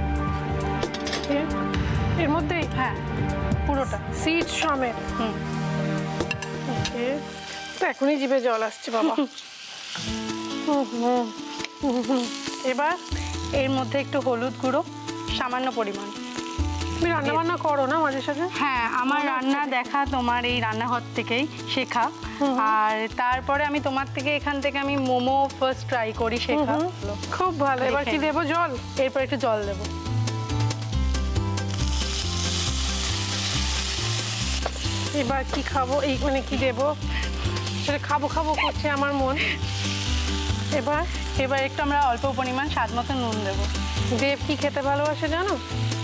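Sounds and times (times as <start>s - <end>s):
background music: 0.0s - 46.0s
food sizzling in oil: 0.2s - 46.0s.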